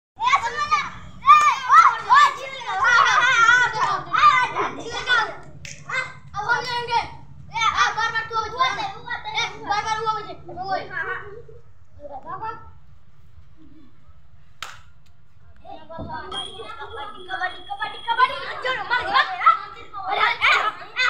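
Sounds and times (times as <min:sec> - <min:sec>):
boys shouting excitedly: 0:00.2 - 0:11.4, 0:15.7 - 0:21.0.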